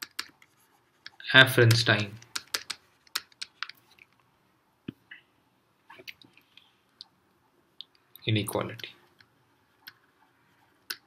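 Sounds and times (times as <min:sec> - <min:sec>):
stylus tapping on tablet: 0:00.0 - 0:03.8.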